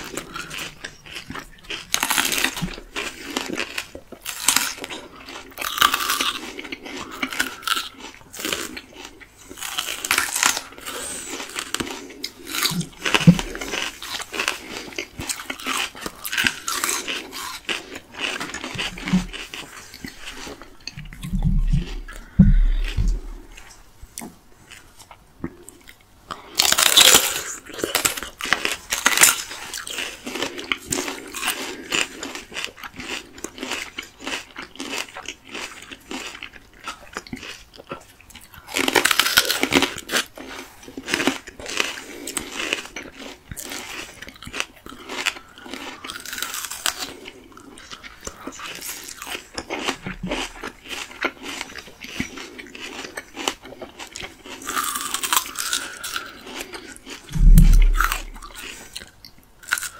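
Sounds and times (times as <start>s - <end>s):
crunchy bites into plums: 0.0s - 23.7s, 47.8s - 58.9s
wet chewing: 0.0s - 59.9s
dull low thump: 21.3s - 23.4s, 57.3s - 58.5s.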